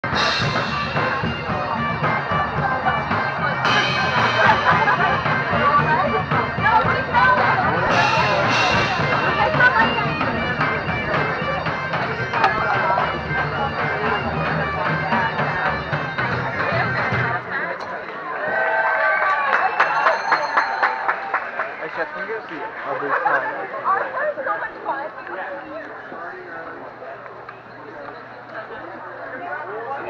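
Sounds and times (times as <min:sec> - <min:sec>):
bagpipes playing with drones: 0:00.0 - 0:17.6
crowd chatter: 0:00.0 - 0:30.0.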